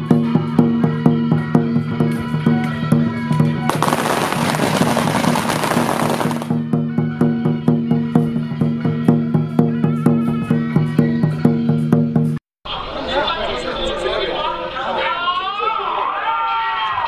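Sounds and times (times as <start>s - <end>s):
firecrackers crackling: 3.7s - 6.6s.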